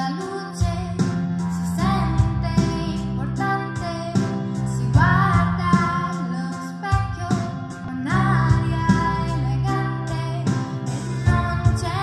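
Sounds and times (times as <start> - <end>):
pop music accompaniment: 0.0 - 12.0
woman singing into a microphone: 0.0 - 12.0.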